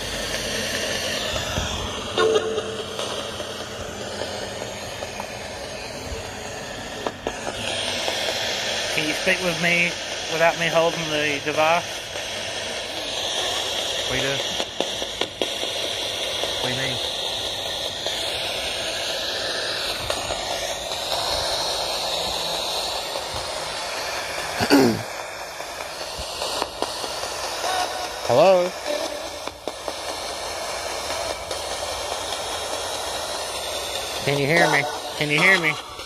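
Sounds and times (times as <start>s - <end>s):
radio static hiss: 7.9s - 36.0s
voice-like snatches: 24.6s - 25.1s.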